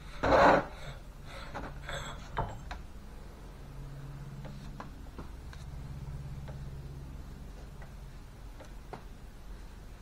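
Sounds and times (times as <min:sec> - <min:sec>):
metal cylinder scraping: 0:00.0 - 0:02.6.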